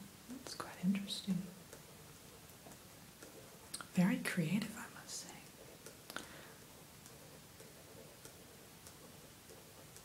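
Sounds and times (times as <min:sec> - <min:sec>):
soft clicks: 0:00.4 - 0:03.9, 0:05.4 - 0:10.0
faint breath: 0:06.1 - 0:06.6.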